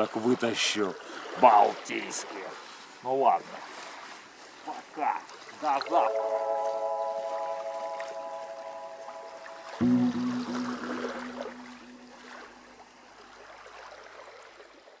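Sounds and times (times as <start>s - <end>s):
held music chord: 5.8s - 12.7s
lower chord ringing out: 5.9s - 12.8s.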